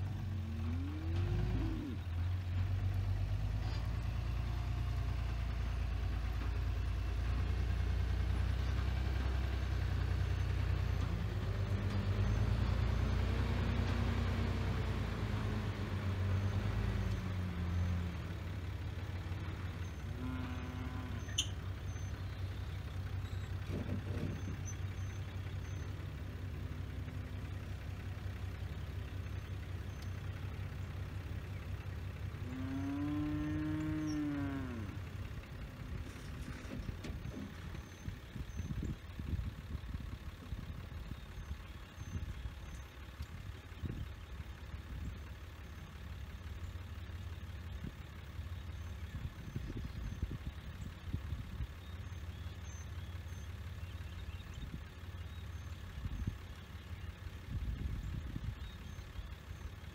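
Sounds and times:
truck engine running: 0.0s - 59.9s.

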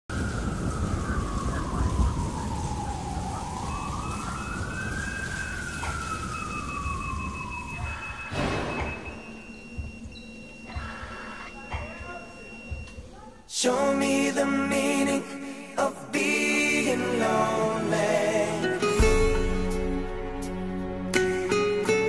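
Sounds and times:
rain-like hiss: 0.1s - 9.2s, 13.6s - 22.0s
siren-like wailing tone: 0.1s - 13.0s.

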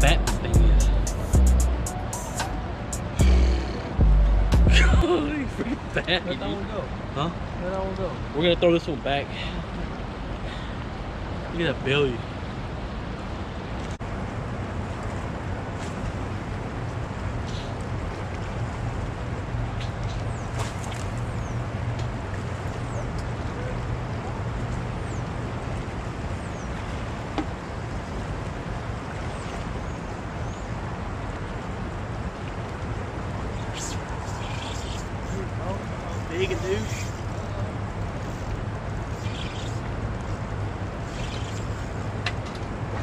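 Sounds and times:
low steady hum: 0.0s - 8.2s.

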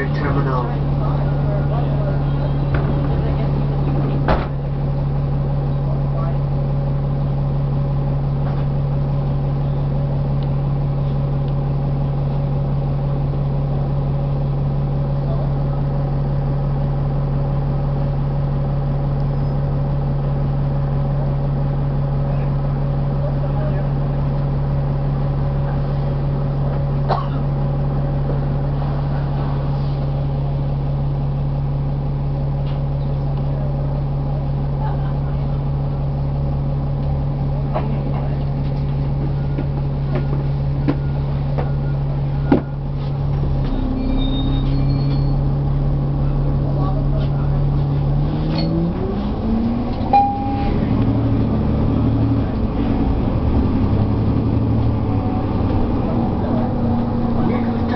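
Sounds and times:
bus diesel engine drone: 0.0s - 57.9s.

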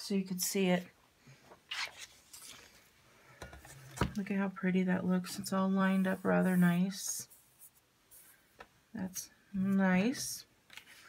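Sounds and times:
paper rustling: 1.7s - 2.8s.

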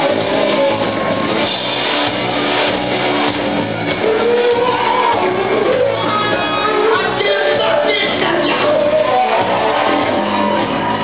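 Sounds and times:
electric guitars: 0.0s - 11.0s
hard rock band playing: 0.0s - 11.0s.

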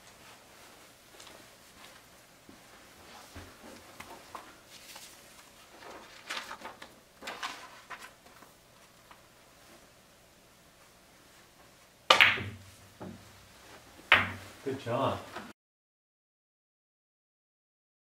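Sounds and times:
cue ball clacking into ball: 12.1s - 13.2s, 14.1s - 14.4s.

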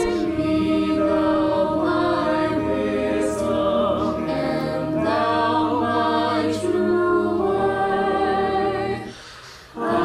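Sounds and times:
choir singing a cappella: 0.0s - 10.0s.

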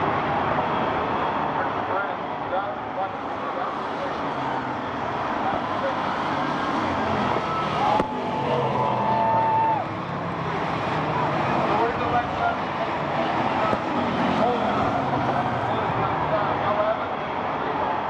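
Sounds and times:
murmur of spectators talking: 0.0s - 18.0s
stock car engines racing: 0.0s - 18.0s.

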